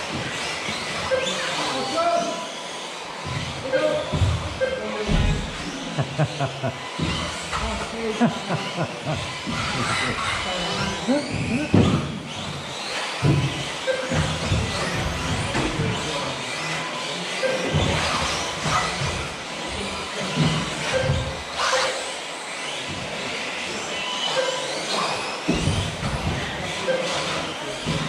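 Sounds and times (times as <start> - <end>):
rc cars knocking against track: 0.0 - 1.7, 2.5 - 8.0, 8.6 - 28.0
rc car motors whining: 0.0 - 28.0.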